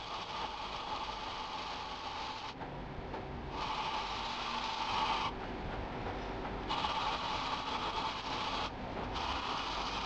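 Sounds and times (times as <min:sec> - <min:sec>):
file stroking steel blade: 0:00.0 - 0:02.6, 0:03.5 - 0:05.4, 0:06.7 - 0:10.0.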